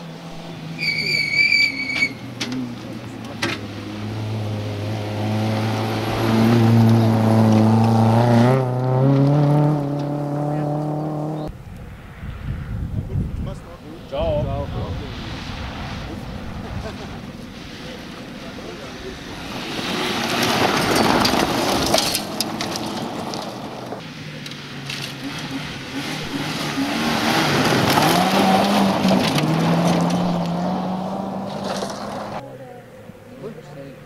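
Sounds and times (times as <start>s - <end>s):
rally cars passing: 0.0s - 34.0s
tyre and gravel noise: 15.1s - 32.5s.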